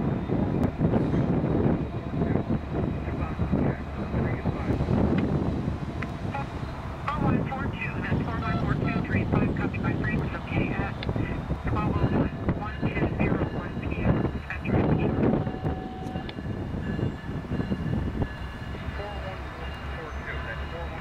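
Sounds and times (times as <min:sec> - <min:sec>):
diesel locomotive engine rumble: 0:00.0 - 0:21.0.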